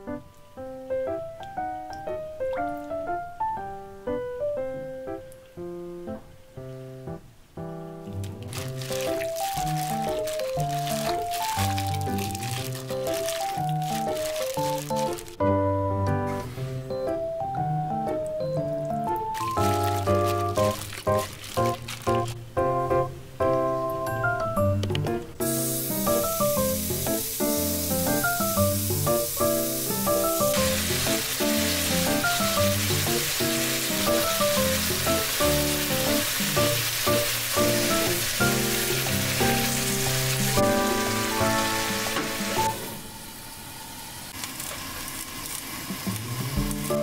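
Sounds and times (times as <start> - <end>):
meat sizzling in a frying pan: 8.1 - 15.4, 19.3 - 22.4, 25.4 - 43.0
playful background music: 8.8 - 42.8.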